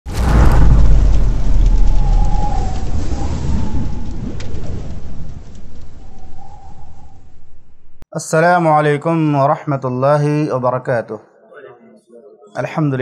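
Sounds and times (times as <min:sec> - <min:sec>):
steady rain: 0:00.1 - 0:07.3
thunder rumbling: 0:00.1 - 0:08.0.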